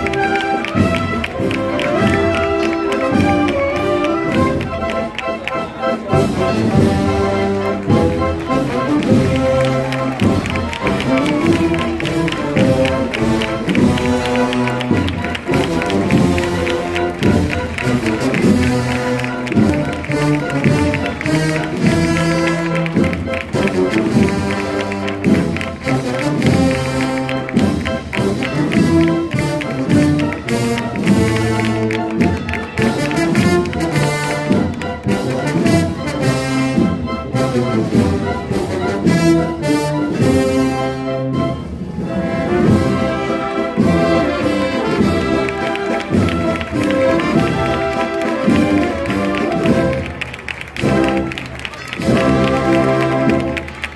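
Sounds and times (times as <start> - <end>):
brass band playing march: 0.0 - 53.9.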